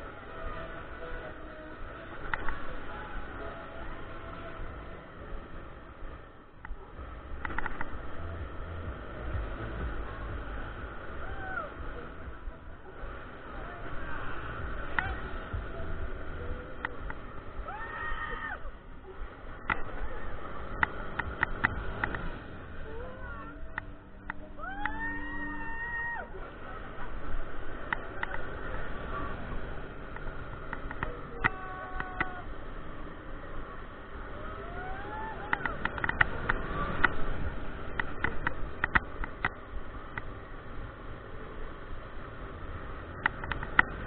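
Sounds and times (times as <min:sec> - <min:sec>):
wind rushing over microphone: 0:00.0 - 0:44.0
high drawn-out wail: 0:11.1 - 0:12.0, 0:17.6 - 0:18.8, 0:24.4 - 0:26.6, 0:31.0 - 0:32.6, 0:34.2 - 0:37.1.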